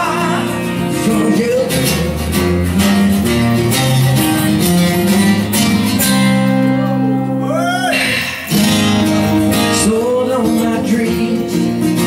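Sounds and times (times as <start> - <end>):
acoustic guitars strumming chords: 0.0 - 12.0.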